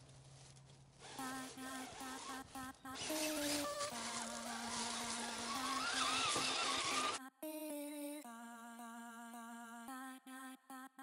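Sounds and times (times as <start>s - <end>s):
electric motor whine: 3.0s - 7.2s.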